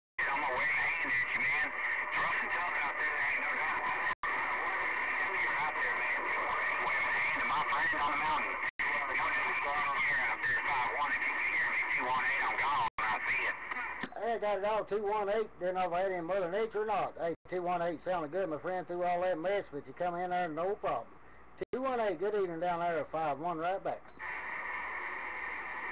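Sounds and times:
garbled voice over radio: 0.2s - 17.3s
radio static hiss: 0.2s - 25.9s.

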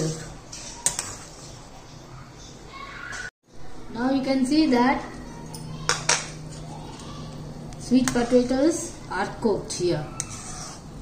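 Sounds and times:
metal ladle stirring milk: 10.1s - 11.0s.

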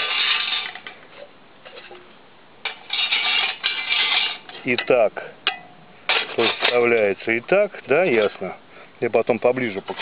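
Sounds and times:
metal rods scraping and clinking: 0.0s - 7.2s, 9.6s - 10.0s.

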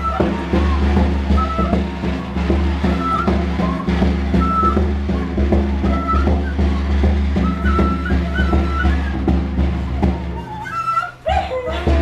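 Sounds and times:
frame drums beating: 0.0s - 12.0s
wooden flute phrases: 0.0s - 12.0s.

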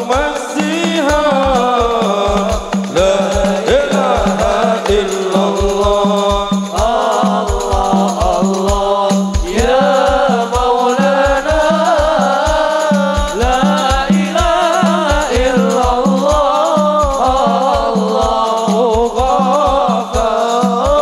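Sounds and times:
frame drums and bass drum: 0.0s - 21.0s
man chanting into a microphone: 0.0s - 21.0s.

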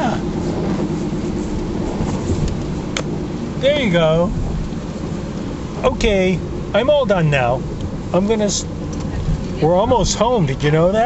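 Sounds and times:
car driving interior rumble: 0.0s - 11.0s.

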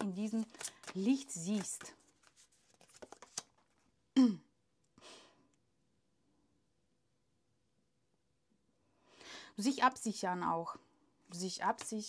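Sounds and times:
cards clicking and tapping: 0.2s - 3.8s.

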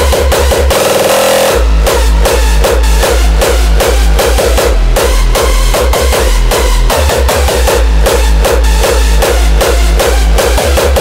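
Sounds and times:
distorted kick drum beat: 0.0s - 11.0s
drum fill: 0.0s - 11.0s.

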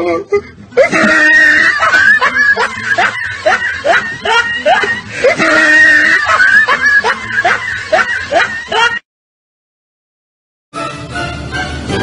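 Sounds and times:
woman giggling: 0.8s - 9.0s.

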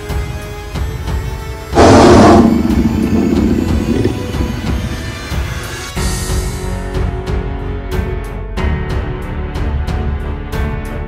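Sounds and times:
background music: 0.0s - 11.0s
tiger roar: 1.8s - 5.7s.

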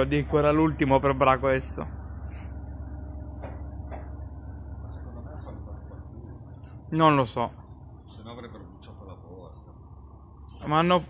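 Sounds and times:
diesel railcar engine rumble: 0.0s - 11.0s.

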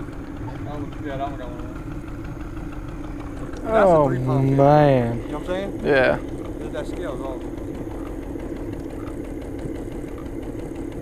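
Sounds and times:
boat motor idling: 0.0s - 11.0s.

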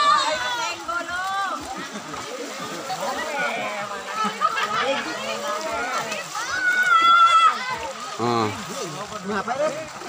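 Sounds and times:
crowd talking and calling out: 0.0s - 10.0s
faint water sloshing: 0.0s - 10.0s.

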